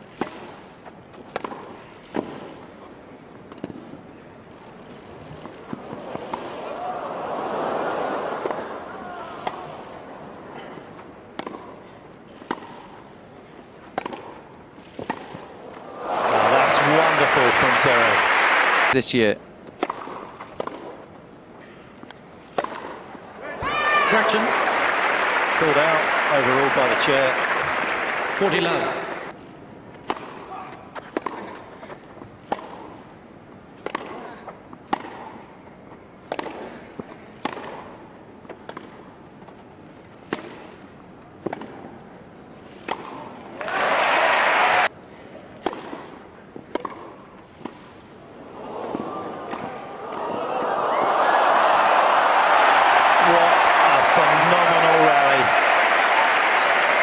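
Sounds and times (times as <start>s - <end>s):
tennis ball struck with rackets: 1.2s - 2.4s, 11.3s - 11.8s, 12.4s - 12.8s, 13.9s - 14.4s, 15.0s - 15.4s, 19.7s - 21.0s, 22.5s - 23.0s, 30.0s - 31.6s, 32.5s - 33.0s, 33.8s - 34.2s, 34.9s - 35.4s, 36.3s - 38.0s, 40.2s - 40.8s, 41.4s - 41.9s, 42.8s - 43.8s, 45.6s - 47.8s
crowd applause and cheering: 6.6s - 8.9s, 15.8s - 19.0s, 23.5s - 29.3s, 43.6s - 44.9s, 48.6s - 57.0s.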